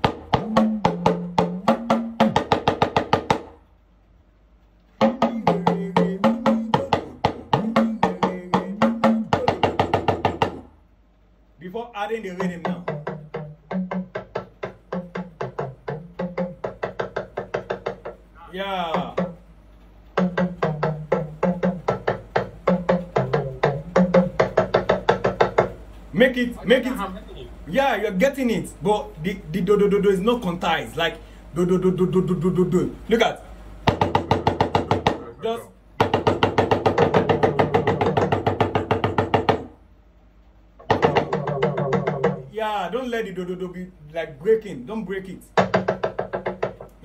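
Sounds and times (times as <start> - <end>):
talking drum struck with stick: 0.0 - 3.6, 5.0 - 10.8, 12.1 - 39.8, 40.8 - 47.0.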